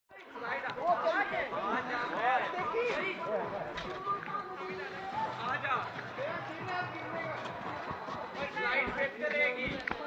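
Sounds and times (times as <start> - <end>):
people chattering: 0.1 - 10.0.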